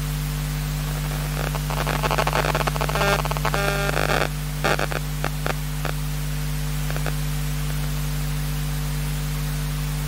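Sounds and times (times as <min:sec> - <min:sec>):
electrical mains hum: 0:00.0 - 0:10.0
crackling and clicking noise: 0:00.8 - 0:06.0, 0:06.8 - 0:08.0.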